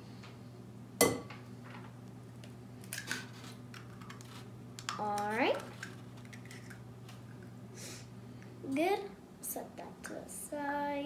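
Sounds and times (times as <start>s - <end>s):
egg striking glass bowl: 1.0s - 1.3s.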